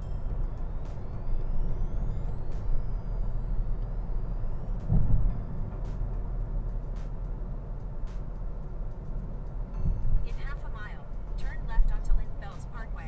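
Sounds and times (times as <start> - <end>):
car cabin road rumble: 0.0 - 13.0
low thump: 4.9 - 5.4.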